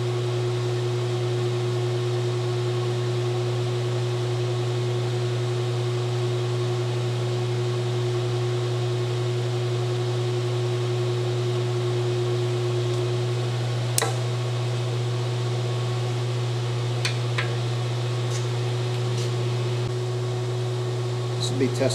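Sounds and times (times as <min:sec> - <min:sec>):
induction heater humming: 0:00.0 - 0:21.9.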